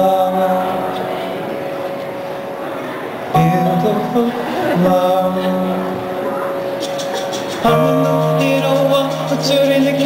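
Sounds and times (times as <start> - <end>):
live band playing chords: 0.0 - 10.0.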